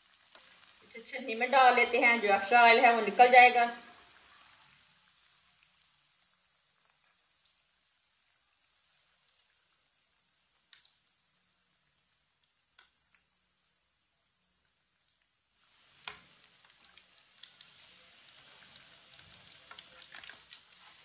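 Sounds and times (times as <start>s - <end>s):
hot oil sizzling in frying pan: 0.0s - 21.0s.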